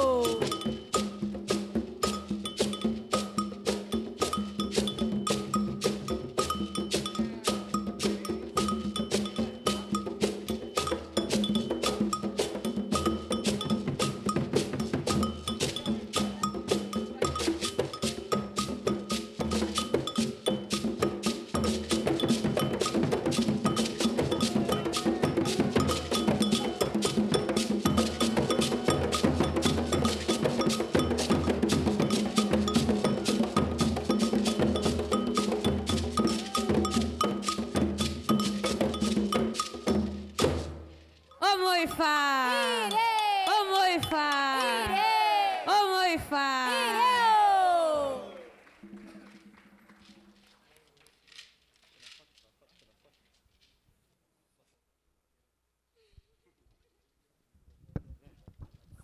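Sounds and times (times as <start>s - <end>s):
woman singing: 0.0s - 0.5s, 41.4s - 48.4s
ringing metallic beat: 0.0s - 40.6s, 41.4s - 45.2s
hand drums and shaker rhythm: 0.0s - 52.2s.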